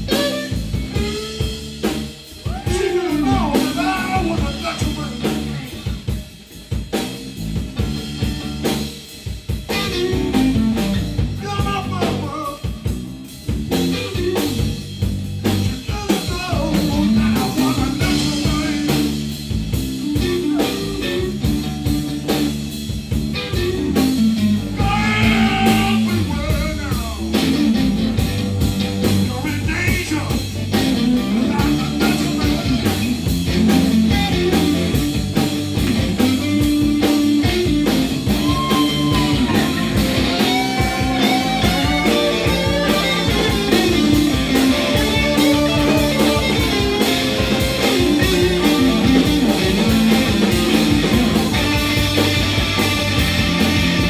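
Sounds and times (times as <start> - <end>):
blues band playing loudly: 0.0 - 54.0
slide guitar notes: 37.3 - 54.0.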